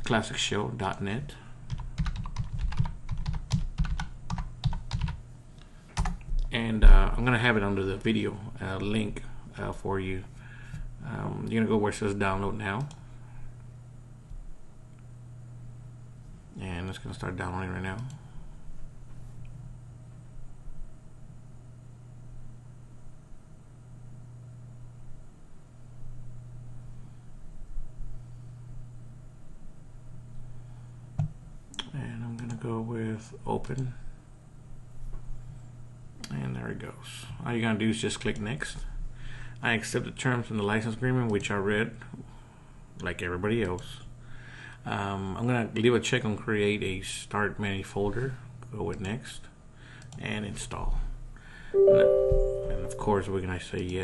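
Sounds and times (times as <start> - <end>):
computer keyboard typing: 1.7 - 5.2
microphone low hum: 6.3 - 7.7
microphone hiss: 50.4 - 54.0.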